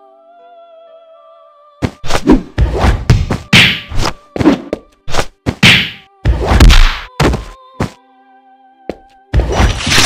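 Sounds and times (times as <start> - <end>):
punch and kick whacks: 1.8 - 7.5, 9.4 - 10.0.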